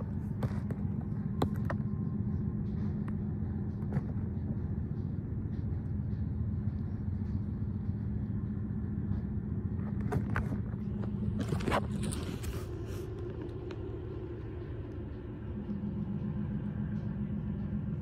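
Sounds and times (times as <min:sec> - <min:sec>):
low mechanical hum: 0:00.0 - 0:18.0.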